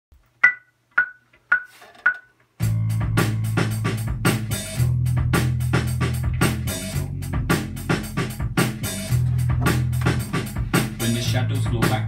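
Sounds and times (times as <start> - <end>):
metronome clicks: 0.4 - 2.4.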